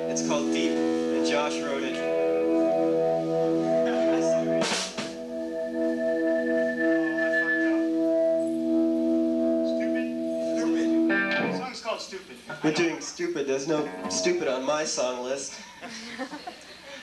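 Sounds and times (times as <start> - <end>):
electric guitar chord ringing: 0.0 - 11.7, 13.8 - 14.6
person talking: 9.7 - 15.5.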